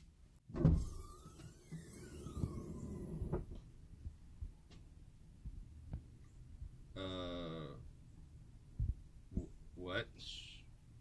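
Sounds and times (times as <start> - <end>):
car hatch creaking open: 0.5 - 3.6
low rumbling: 0.8 - 4.2.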